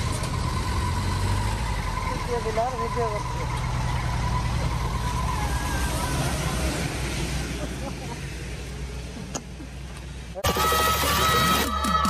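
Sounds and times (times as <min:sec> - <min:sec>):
road traffic rumble: 0:00.0 - 0:12.0
faint voices: 0:10.2 - 0:12.0.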